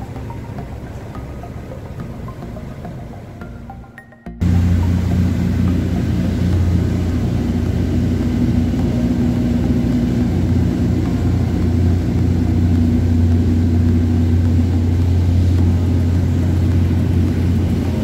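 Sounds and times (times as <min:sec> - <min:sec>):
boat engine droning: 0:00.0 - 0:18.0
rushing water from wake: 0:04.5 - 0:18.0.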